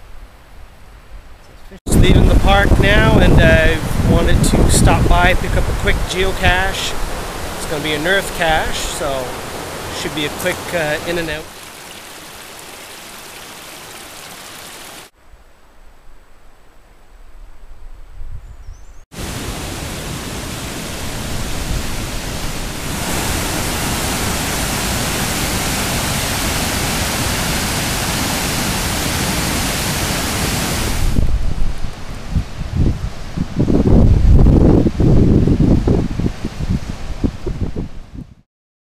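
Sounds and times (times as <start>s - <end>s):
waterfall rapids churning: 5.2s - 15.1s, 19.2s - 31.2s
small brook flowing: 7.1s - 15.1s.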